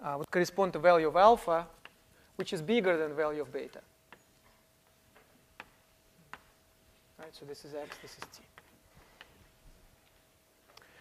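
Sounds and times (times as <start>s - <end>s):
faint steady hum: 0.0s - 11.0s
chalk tapping on board: 5.6s - 6.6s.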